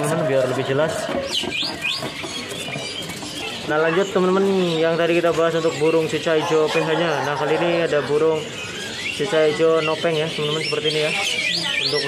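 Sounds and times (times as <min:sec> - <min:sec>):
small bird chirping: 0:01.2 - 0:12.0.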